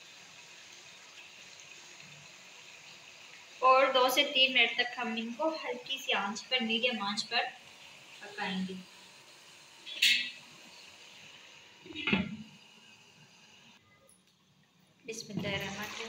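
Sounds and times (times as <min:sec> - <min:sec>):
glass lid clinking on metal pan: 0:09.9 - 0:10.4.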